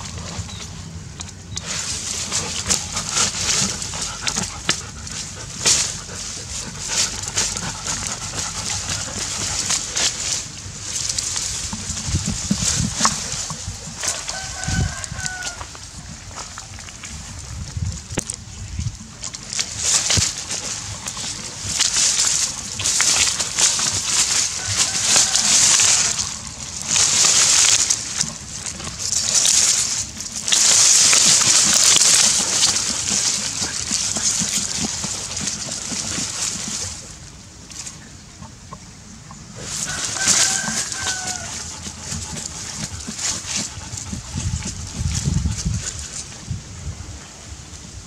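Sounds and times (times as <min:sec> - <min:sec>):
dog digging in soil: 0:00.0 - 0:38.5, 0:39.4 - 0:46.9
dry stalks rustling: 0:00.0 - 0:48.0.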